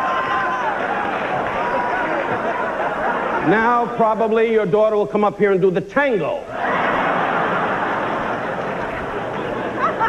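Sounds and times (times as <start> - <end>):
large audience laughing: 0.9 - 4.0, 6.5 - 10.0.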